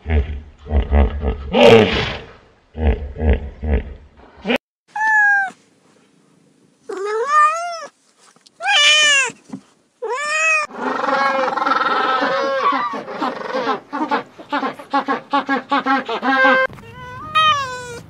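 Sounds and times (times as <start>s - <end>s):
cat meowing: 4.9s - 5.6s, 6.9s - 7.9s, 8.6s - 9.4s, 10.0s - 10.7s, 16.6s - 18.0s.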